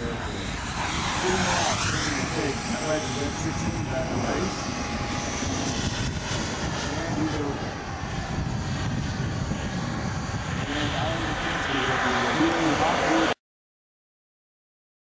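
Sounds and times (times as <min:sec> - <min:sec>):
people talking: 0:00.0 - 0:04.6, 0:06.7 - 0:07.8, 0:10.6 - 0:13.4
model jet turbine whine: 0:00.0 - 0:13.4.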